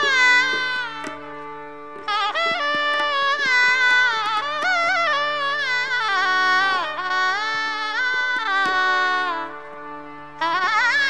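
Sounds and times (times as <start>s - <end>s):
shehnai melody: 0.0s - 11.0s.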